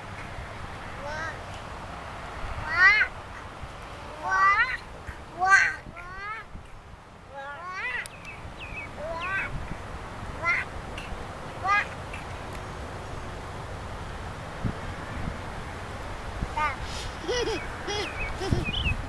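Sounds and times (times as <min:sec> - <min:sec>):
toddlers babbling and squealing: 0:01.0 - 0:01.4, 0:02.6 - 0:03.2, 0:04.0 - 0:06.5, 0:07.3 - 0:08.1, 0:09.0 - 0:09.6, 0:10.4 - 0:10.7, 0:11.6 - 0:12.0.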